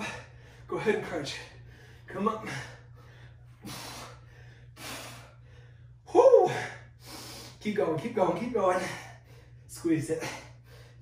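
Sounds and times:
man breathing hard: 0:00.0 - 0:07.6, 0:08.8 - 0:11.0.

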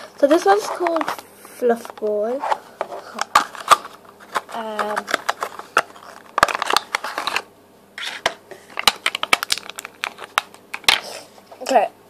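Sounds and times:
plastic packaging crackling: 0:03.0 - 0:11.1.

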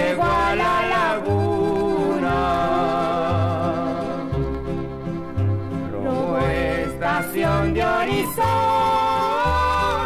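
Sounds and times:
duet song from vinyl record: 0:00.0 - 0:10.0.

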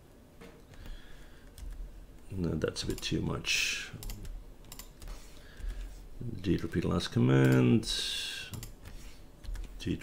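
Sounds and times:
keyboard and mouse clicks: 0:00.6 - 0:01.9, 0:02.8 - 0:03.2, 0:04.0 - 0:05.9, 0:08.5 - 0:09.8.

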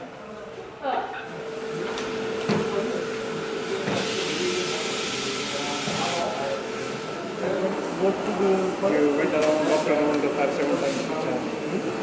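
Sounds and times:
murmur of voices: 0:00.0 - 0:12.0
coffee machine hissing: 0:02.7 - 0:12.0.

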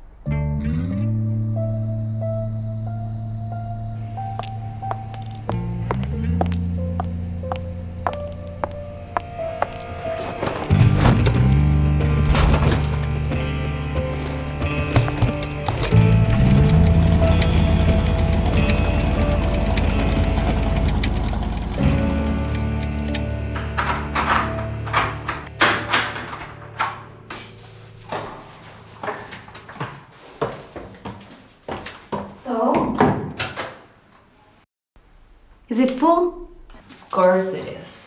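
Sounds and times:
film score with low tones: 0:00.0 - 0:27.0.

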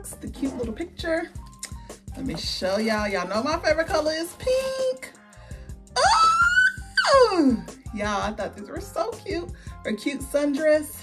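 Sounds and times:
background music with beat: 0:00.0 - 0:11.0
woman squealing excitedly: 0:06.0 - 0:07.6.

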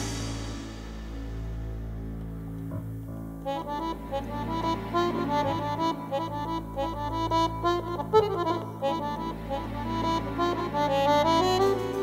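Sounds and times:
held low bass and keyboard chord: 0:00.0 - 0:12.0
jazz band playing: 0:00.0 - 0:12.0
accordion melody run: 0:03.4 - 0:12.0.

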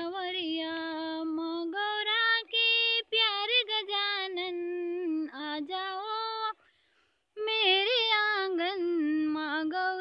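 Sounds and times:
woman singing unaccompanied: 0:00.0 - 0:06.7, 0:07.3 - 0:10.0.

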